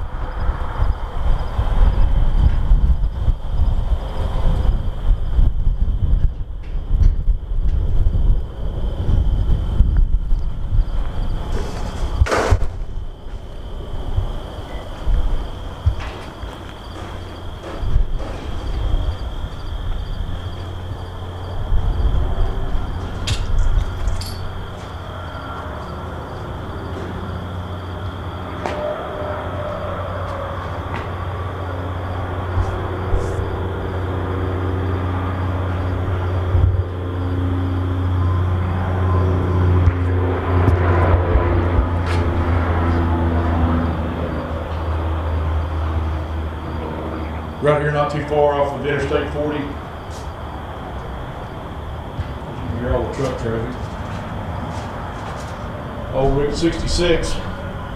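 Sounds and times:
truck traffic rumble: 0.0s - 57.9s.

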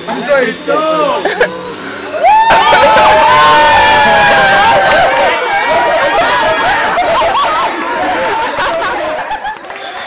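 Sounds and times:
crowd cheering and shouting: 0.8s - 10.0s.

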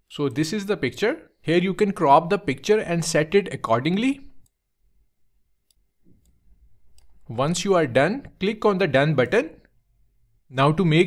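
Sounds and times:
person speaking: 0.0s - 4.6s, 6.2s - 9.8s, 10.4s - 11.0s
computer mouse click: 5.6s - 7.3s.

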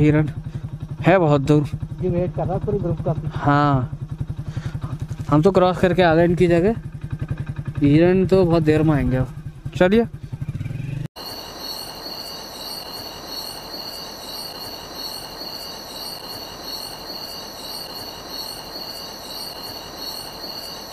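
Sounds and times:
motorcycle engine idling: 0.0s - 20.9s
night insects chirping: 11.2s - 20.9s.

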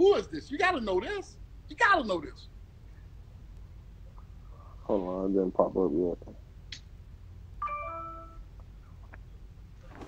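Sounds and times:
electronic chime: 7.6s - 8.4s.

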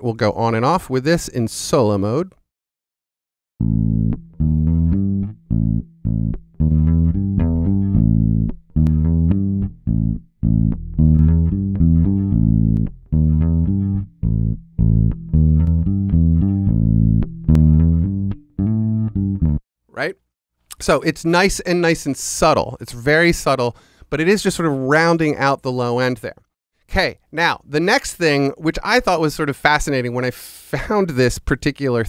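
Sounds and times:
electric bass guitar plucked: 3.6s - 19.6s.

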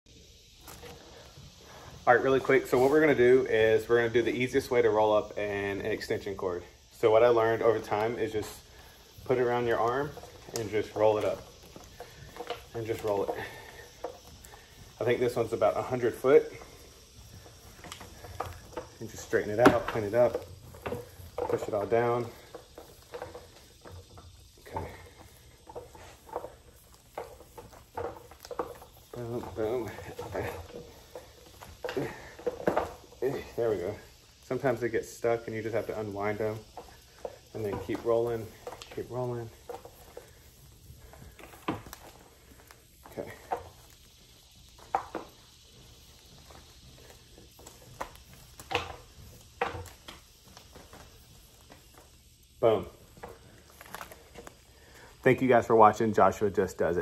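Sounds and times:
cord rustling: 0.3s - 57.0s.

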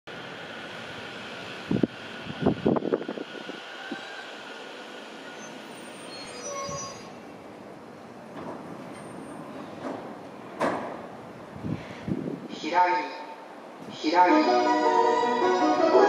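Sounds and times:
brakes squealing: 5.1s - 7.2s.

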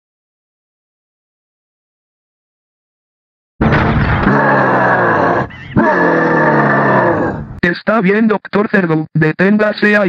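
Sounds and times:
cartoon character roaring yell: 4.1s - 7.6s.

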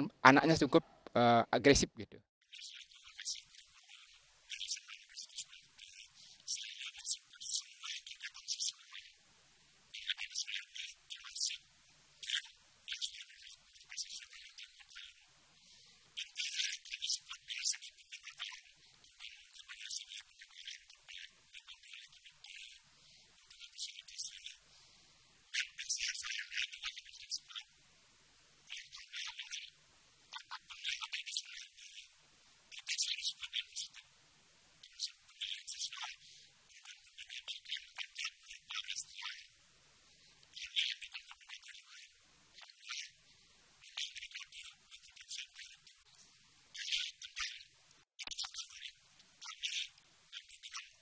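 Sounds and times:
small birds chirping: 2.6s - 9.2s, 10.0s - 24.6s, 34.8s - 39.5s, 40.5s - 43.2s, 43.8s - 51.0s.

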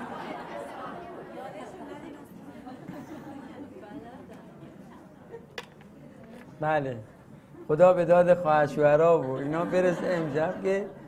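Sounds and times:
audience chattering: 0.0s - 11.0s.

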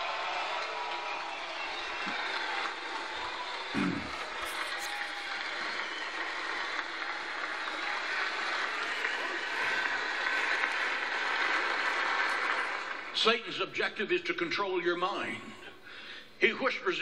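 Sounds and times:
congregation applauding: 0.0s - 13.6s.

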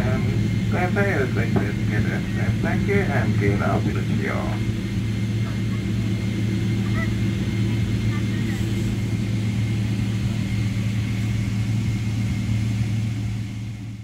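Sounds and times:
aircraft cabin low hum: 0.0s - 14.0s.

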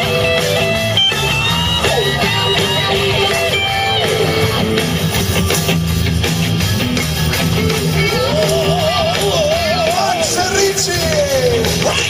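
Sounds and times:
electric guitar sustained notes: 0.0s - 10.9s
bass guitar: 0.0s - 12.0s
drums: 0.0s - 12.0s.

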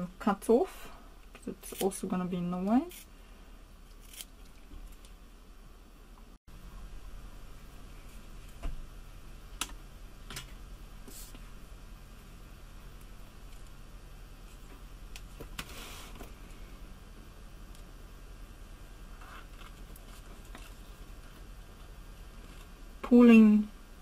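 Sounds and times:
faint steady hum: 0.0s - 24.0s.

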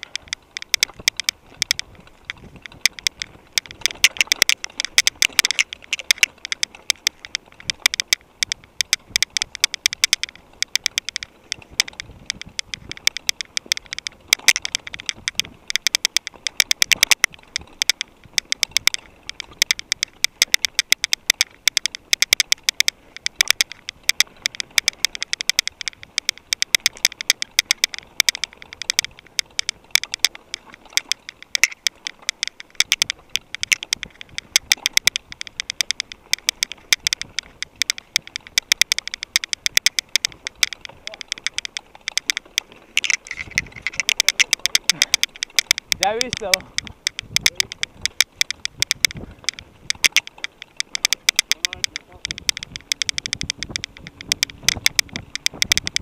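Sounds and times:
mountain bike rattling over dirt: 0.0s - 56.0s.

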